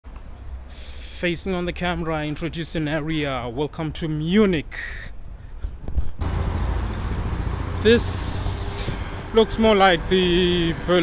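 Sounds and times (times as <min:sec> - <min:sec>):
broad traffic hiss: 0:00.2 - 0:02.4, 0:06.2 - 0:11.0
low vehicle rumble: 0:05.2 - 0:11.0.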